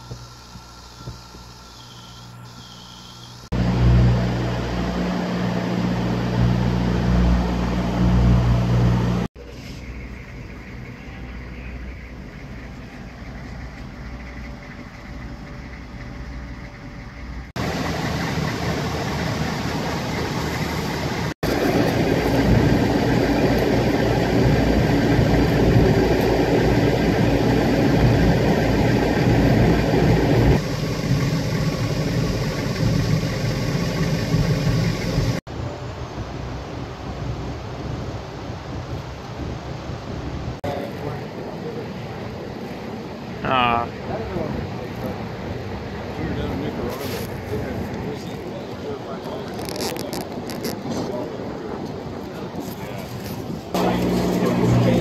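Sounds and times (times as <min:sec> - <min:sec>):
diesel engine idling: 0:00.0 - 0:35.4, 0:53.8 - 0:55.0
low machine hum: 0:00.0 - 0:35.4, 0:53.8 - 0:55.0.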